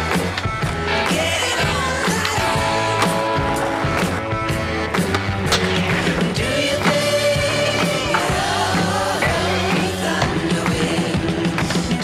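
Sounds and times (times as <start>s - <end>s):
music with steady beat: 0.0s - 12.0s.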